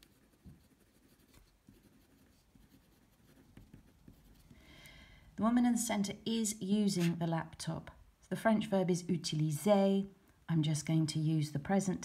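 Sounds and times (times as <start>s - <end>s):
marker scratching on paper: 0.0s - 4.5s, 6.8s - 7.3s.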